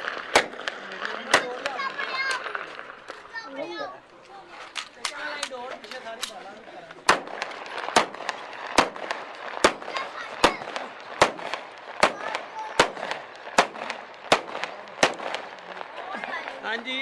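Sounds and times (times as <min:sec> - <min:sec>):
loud echoing bangs: 0:00.0 - 0:03.0, 0:07.0 - 0:16.7
faint voices: 0:00.0 - 0:17.0.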